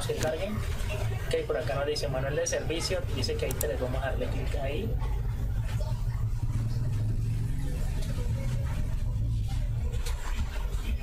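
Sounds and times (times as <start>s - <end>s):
low-pitched rumble: 4.1s - 11.0s.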